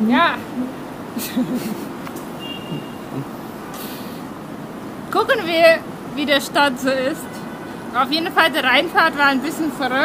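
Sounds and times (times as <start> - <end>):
city street traffic: 0.0 - 10.0
brief hiss: 3.7 - 4.3.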